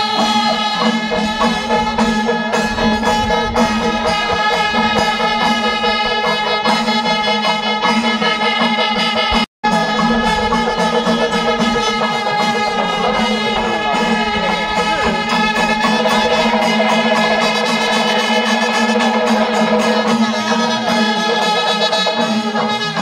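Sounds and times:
percussion beats: 0:00.0 - 0:23.0
traditional festival music: 0:00.0 - 0:23.0
steady held drone: 0:09.7 - 0:23.0.

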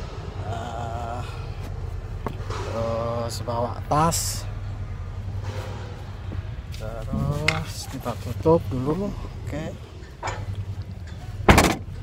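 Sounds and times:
car hatch slamming shut: 0:11.5 - 0:11.9.

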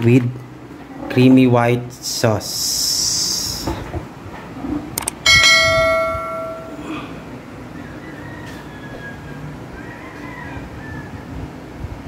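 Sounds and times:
ringing bell chime: 0:05.3 - 0:06.9.

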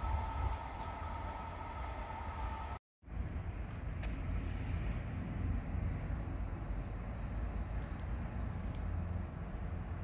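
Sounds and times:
distant electric locomotive rumble: 0:00.0 - 0:10.0.

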